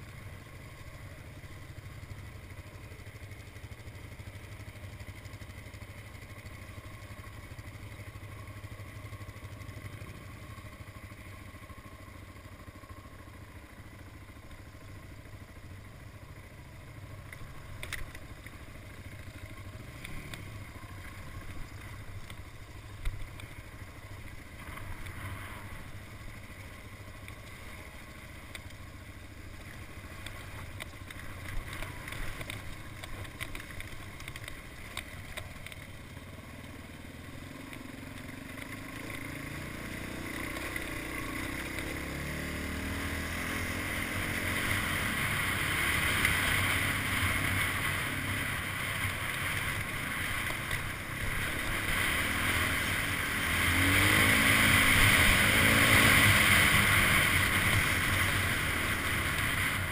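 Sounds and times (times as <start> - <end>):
motorcycle engine: 0.0 - 59.9.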